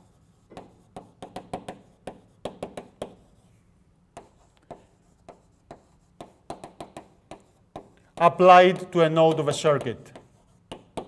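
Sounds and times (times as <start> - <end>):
chalk tapping on blackboard: 0.0 - 3.5, 4.1 - 11.0.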